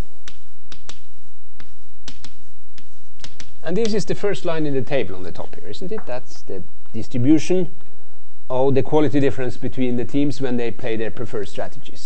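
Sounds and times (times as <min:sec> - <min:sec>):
chalk tapping on chalkboard: 0:00.0 - 0:04.2.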